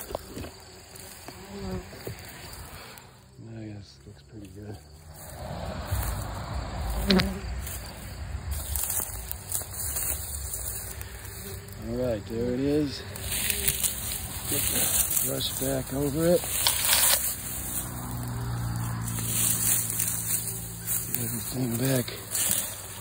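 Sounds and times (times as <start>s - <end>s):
bumblebees buzzing: 0.0s - 23.0s.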